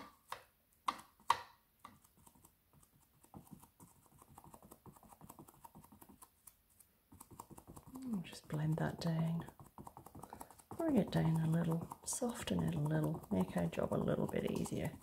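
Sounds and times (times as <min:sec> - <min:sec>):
sponge dabbing paint on canvas: 0:00.0 - 0:15.0
sharp taps: 0:07.1 - 0:15.0.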